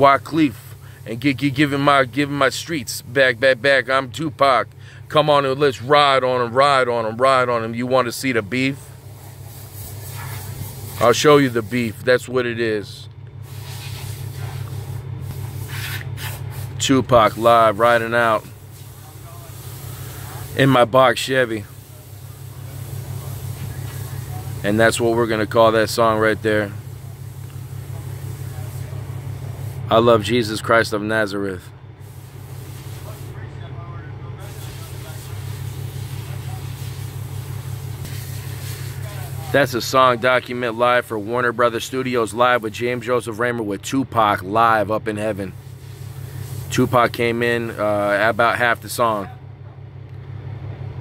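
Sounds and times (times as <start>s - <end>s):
car cabin engine hum: 0.0s - 51.0s
soft breath: 4.8s - 5.1s.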